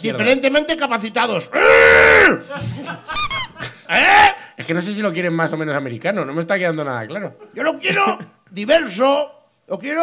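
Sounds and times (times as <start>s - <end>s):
high-pitched squeaks: 3.2s - 3.6s.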